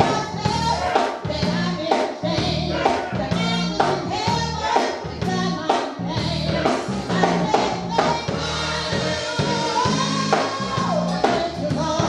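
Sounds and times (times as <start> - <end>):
congregation singing gospel: 0.0 - 12.0
instrumental backing with beat: 0.0 - 12.0.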